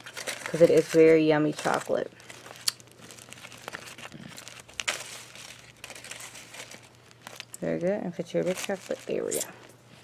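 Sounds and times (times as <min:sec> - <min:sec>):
foil wrapper crinkling: 0:00.0 - 0:09.8
plastic bag crinkling: 0:00.0 - 0:10.0.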